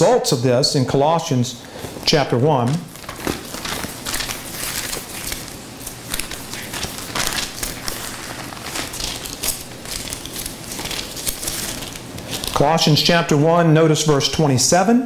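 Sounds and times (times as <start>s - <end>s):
pages rustling: 1.7s - 13.1s.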